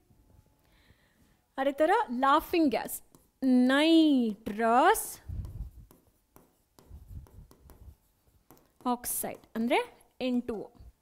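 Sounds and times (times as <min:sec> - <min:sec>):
marker pen writing on board: 0:03.0 - 0:03.6, 0:04.2 - 0:09.9.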